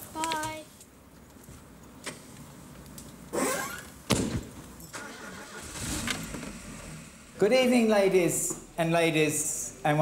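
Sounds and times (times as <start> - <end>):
car engine starting and running: 4.9 - 8.3.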